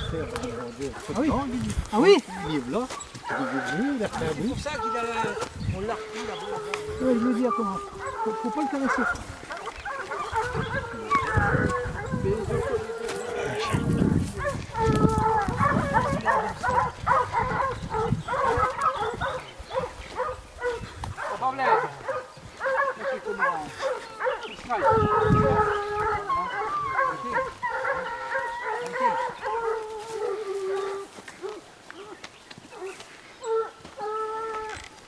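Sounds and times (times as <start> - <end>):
hounds baying: 0.0 - 35.0.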